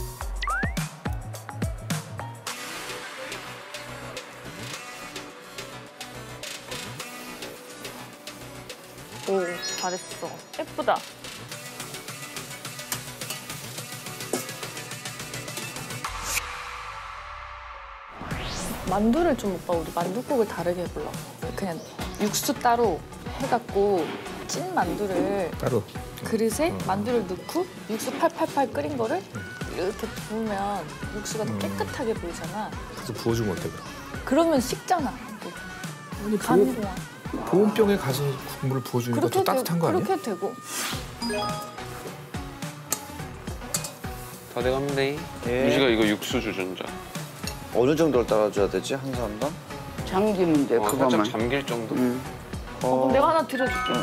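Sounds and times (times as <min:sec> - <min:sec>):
background music with steady beat: 0:00.0 - 0:54.0.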